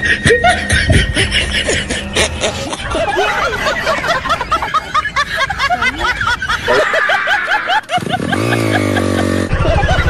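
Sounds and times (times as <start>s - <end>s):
high-pitched snickering laughter: 0.0s - 10.0s.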